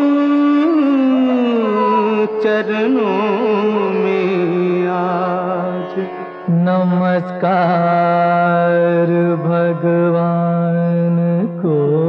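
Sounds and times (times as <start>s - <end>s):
person singing long notes: 0.0s - 12.0s.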